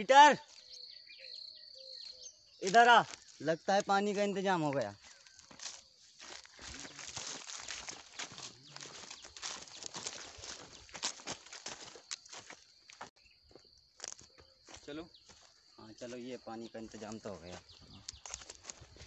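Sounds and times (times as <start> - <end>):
footsteps crunching dry leaves: 2.6 - 19.0.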